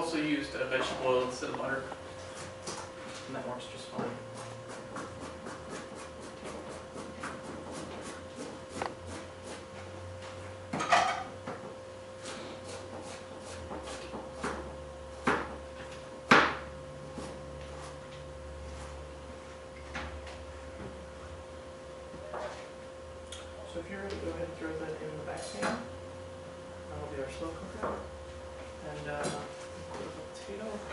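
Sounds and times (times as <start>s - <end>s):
steady hum: 0.0s - 30.9s.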